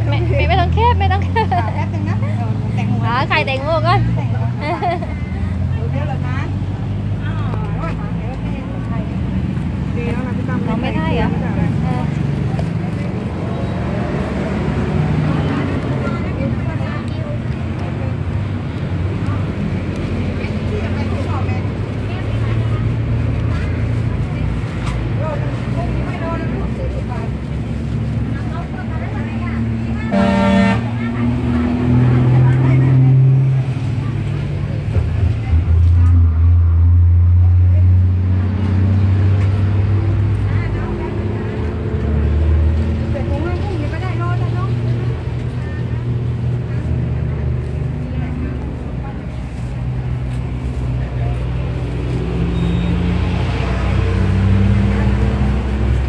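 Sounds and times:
vehicle engines rumbling: 0:00.0 - 0:56.0.

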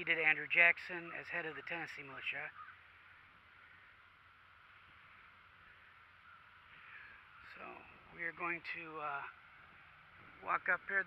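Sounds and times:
faint crow caw: 0:02.5 - 0:04.2, 0:05.1 - 0:07.9.

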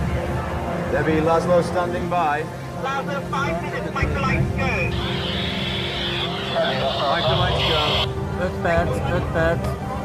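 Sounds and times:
low drone: 0:04.1 - 0:08.4
two-way radio hiss: 0:04.2 - 0:08.1
garbled radio voice: 0:06.2 - 0:08.1.

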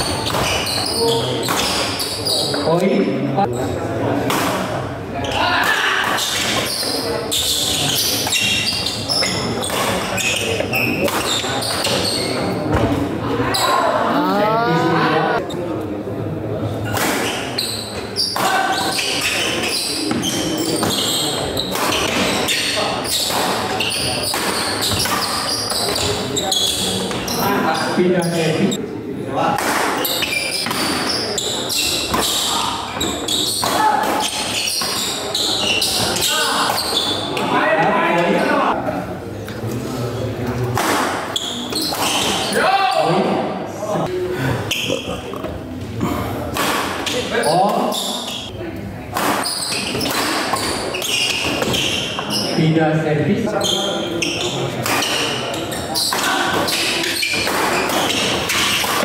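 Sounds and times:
crowd chatter: 0:00.0 - 0:59.0.

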